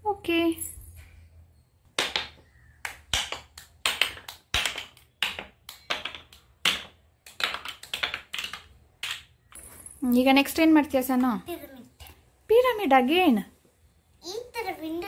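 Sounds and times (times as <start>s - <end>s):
toy blocks clacking: 1.9s - 9.7s.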